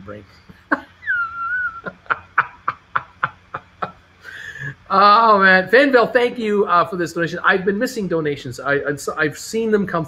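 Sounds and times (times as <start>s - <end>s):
man laughing: 0.5s - 4.8s.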